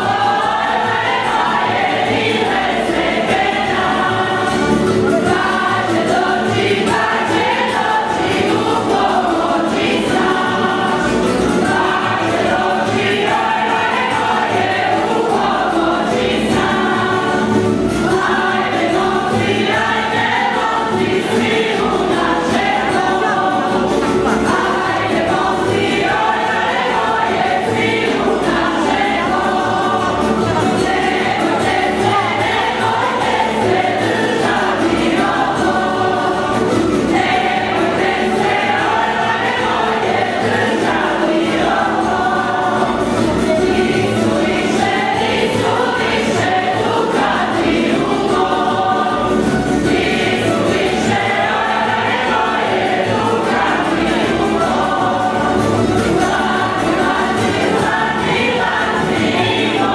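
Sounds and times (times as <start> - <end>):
group singing folk song: 0.0 - 59.9
plucked string band: 0.0 - 59.9.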